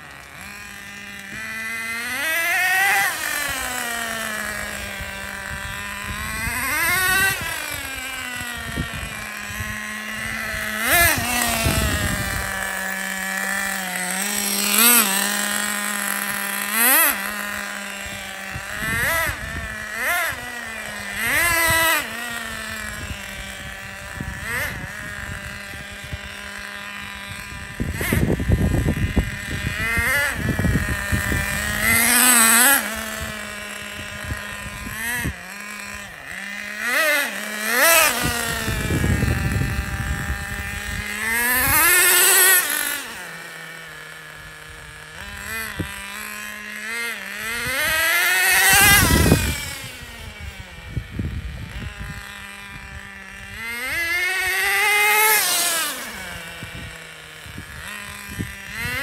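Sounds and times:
model nitro engine revving: 0.0s - 59.0s.

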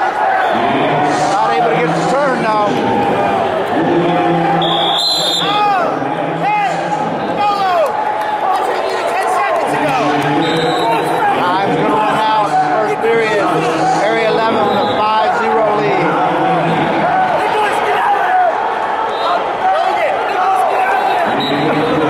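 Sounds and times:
crowd and coaches shouting: 0.0s - 22.0s
referee's whistle: 4.6s - 5.6s, 10.4s - 11.1s, 14.6s - 15.0s, 21.0s - 22.0s.

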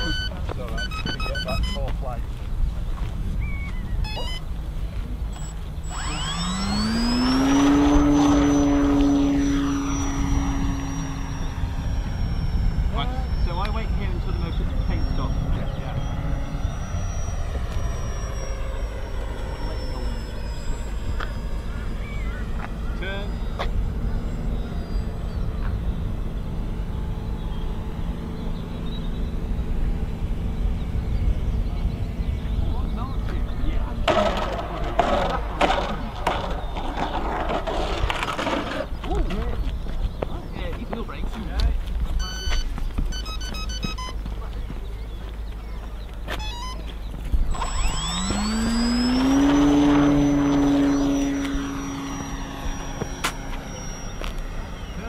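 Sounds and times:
model aircraft motor whine: 0.0s - 55.0s
plane rattling on runway: 0.0s - 55.0s.

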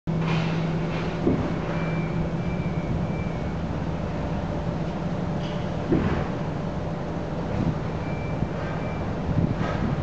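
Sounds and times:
low engine hum: 0.1s - 10.0s.

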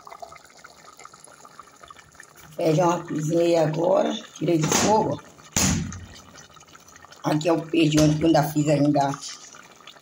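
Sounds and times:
stew bubbling in a pot: 0.0s - 10.0s.

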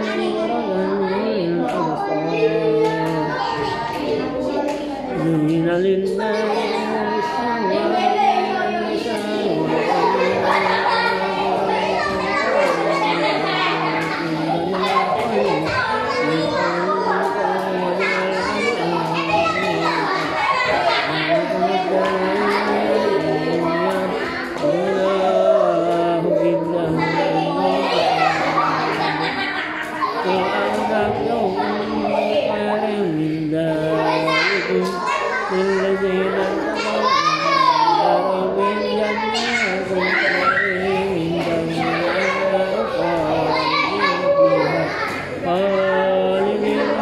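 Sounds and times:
man chanting recitation: 0.0s - 47.0s.

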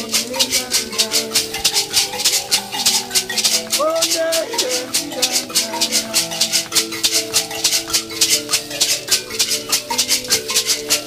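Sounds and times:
gourd shakers: 0.0s - 11.0s
thumb pianos playing: 0.0s - 11.0s.

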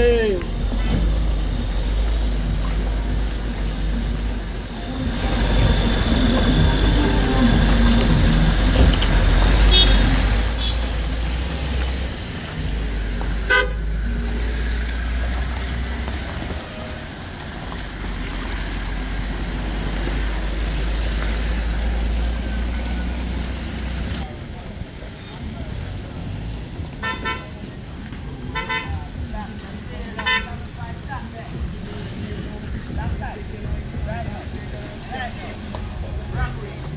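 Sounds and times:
cars passing on gravel road: 0.0s - 36.9s
tyres on muddy surface: 0.0s - 36.9s
car horn toot: 9.6s - 10.8s, 13.5s - 13.8s.

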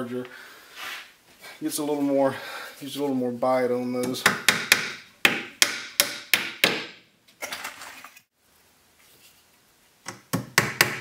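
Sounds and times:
hammer striking nails into wood: 4.1s - 7.0s, 10.1s - 11.0s.

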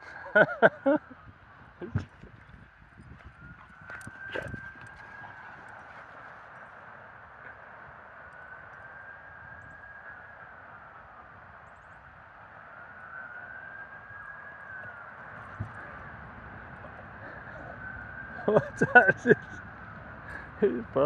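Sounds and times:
faint siren wail: 0.0s - 21.0s.

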